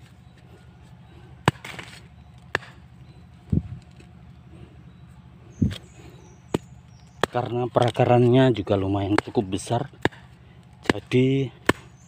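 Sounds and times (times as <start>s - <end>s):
machete chopping tree roots: 1.4s - 2.8s, 6.5s - 12.0s.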